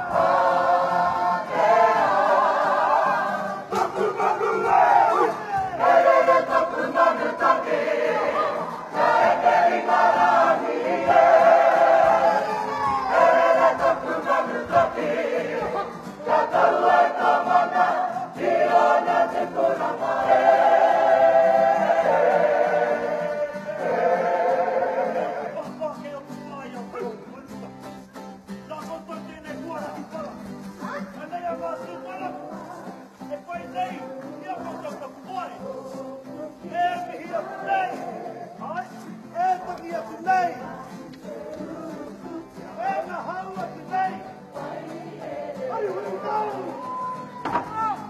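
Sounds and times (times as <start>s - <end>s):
group singing in unison: 0.0s - 25.8s, 31.8s - 47.1s.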